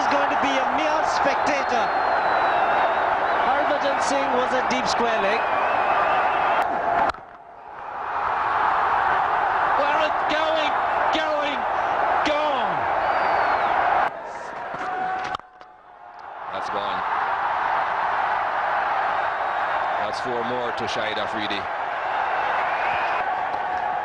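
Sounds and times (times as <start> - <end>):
stadium crowd cheering: 0.0 - 24.0.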